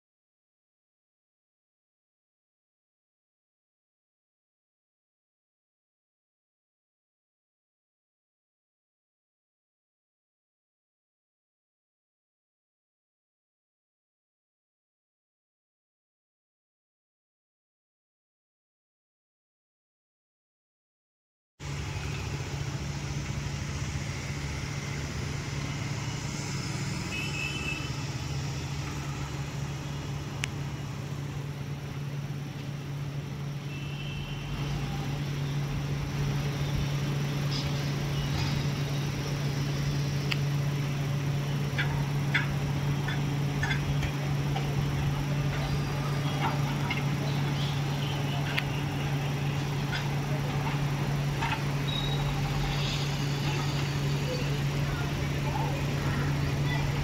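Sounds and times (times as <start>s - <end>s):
engine droning: 21.6s - 57.0s.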